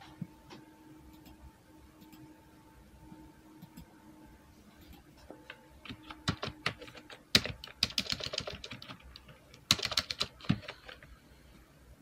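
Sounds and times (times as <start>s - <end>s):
typing on computer keyboard: 5.8s - 11.1s.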